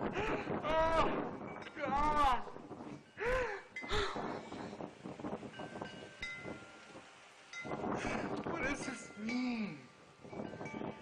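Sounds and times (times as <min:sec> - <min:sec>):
man exclaiming emotionally: 0:00.6 - 0:01.2, 0:01.8 - 0:02.5
rough breaths: 0:02.9 - 0:04.9, 0:07.9 - 0:08.4.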